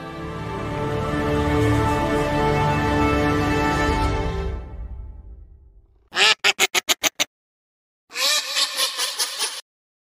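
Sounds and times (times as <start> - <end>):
duck quacking: 6.1 - 7.3, 8.1 - 9.6.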